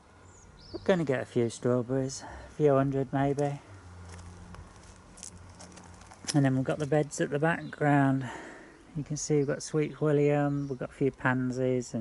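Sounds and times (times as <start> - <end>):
faint footsteps: 3.3 - 7.2.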